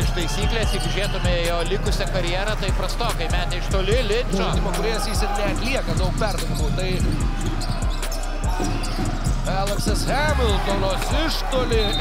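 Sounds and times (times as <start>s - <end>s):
basketball bouncing on hardwood: 5.9s - 10.1s.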